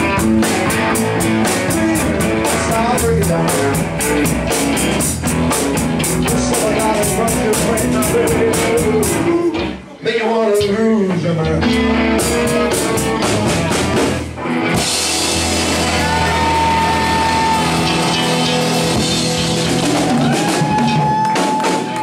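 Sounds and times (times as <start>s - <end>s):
drum kit with cymbal strokes: 0.0s - 9.2s, 12.2s - 22.0s
bass guitar: 0.0s - 10.0s, 10.6s - 22.0s
electric guitars: 0.0s - 10.0s, 11.1s - 22.0s.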